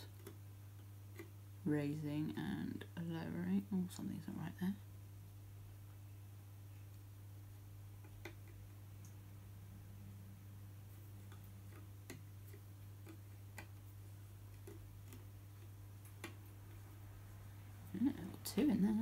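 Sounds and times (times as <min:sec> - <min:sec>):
loom clicks and taps: 0:00.0 - 0:01.4, 0:06.7 - 0:09.3, 0:10.9 - 0:19.0
steady low hum: 0:00.0 - 0:19.0.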